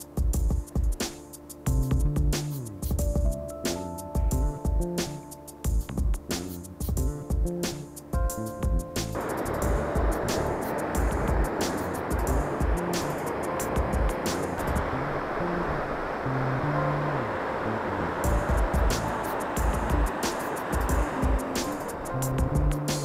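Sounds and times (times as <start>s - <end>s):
music with drums and bass: 0.0s - 14.9s, 18.2s - 23.0s
river rapids rushing: 9.2s - 23.0s.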